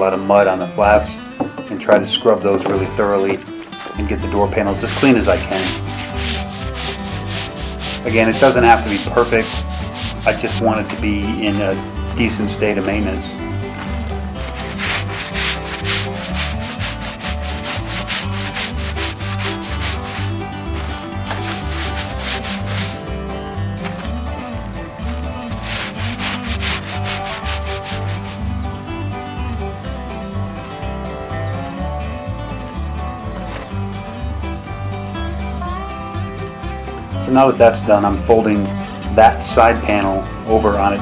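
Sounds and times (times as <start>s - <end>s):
brush scrubbing canvas fabric: 4.8s - 10.5s, 14.4s - 23.0s, 25.5s - 28.5s.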